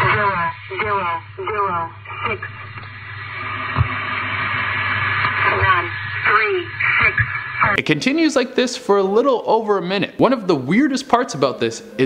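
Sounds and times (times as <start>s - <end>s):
radio static hiss: 0.0s - 9.2s
low hum: 0.0s - 10.7s.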